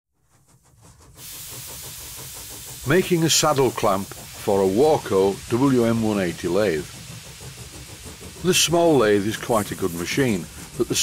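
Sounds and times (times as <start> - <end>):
steady steam hiss: 0.2 - 11.0
fast even pulsing: 0.3 - 11.0.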